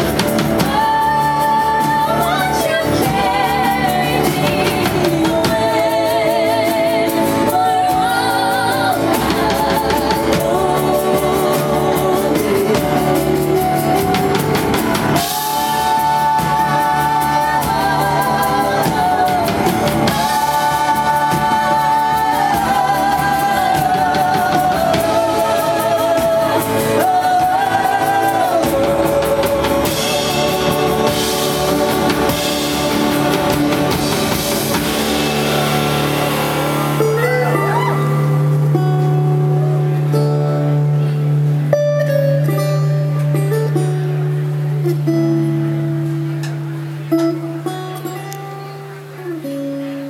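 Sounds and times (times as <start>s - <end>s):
acoustic guitar: 0.0s - 50.0s
drums: 0.0s - 50.0s
person singing lead: 15.1s - 35.1s, 36.9s - 40.0s.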